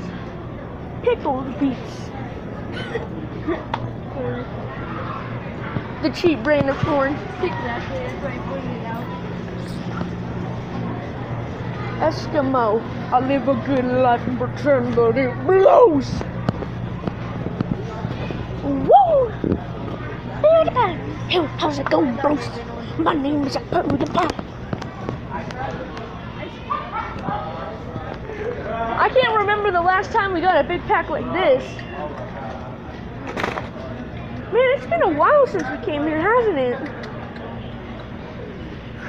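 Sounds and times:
busy store rumble: 0:00.0 - 0:39.0
low steady hum: 0:00.0 - 0:39.0.

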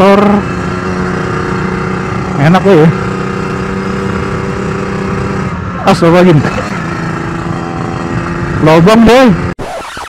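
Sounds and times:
two-stroke motorcycle engine running: 0:00.0 - 0:09.5
road and wind noise: 0:00.0 - 0:09.6.

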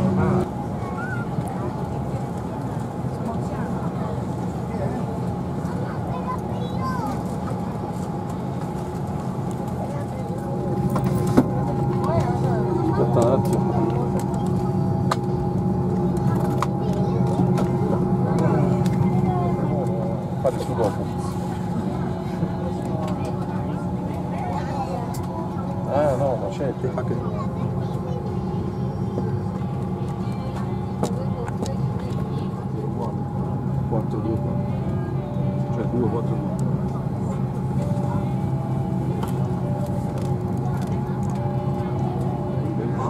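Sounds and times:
cabin air system hum: 0:00.0 - 0:43.0
passengers chattering: 0:00.0 - 0:43.0.

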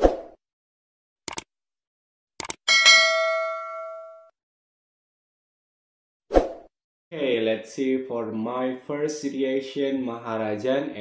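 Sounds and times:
notification bell ding: 0:02.7 - 0:04.3.

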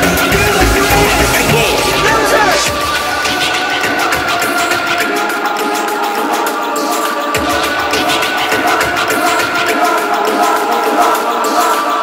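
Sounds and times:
sustained high synth notes: 0:00.0 - 0:04.6.

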